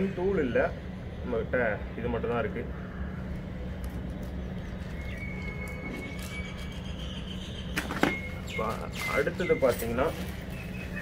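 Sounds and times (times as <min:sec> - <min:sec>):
outdoor background rumble: 0:00.0 - 0:11.0
faint high whistle: 0:05.0 - 0:06.8.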